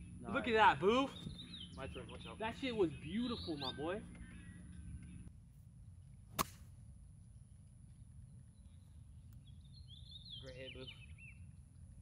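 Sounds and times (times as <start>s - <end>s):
golf club striking ball: 6.3s - 6.8s.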